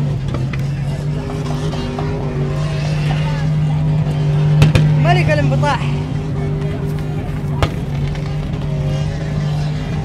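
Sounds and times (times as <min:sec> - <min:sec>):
engine idling: 0:00.0 - 0:10.0
faint voices: 0:00.0 - 0:10.0.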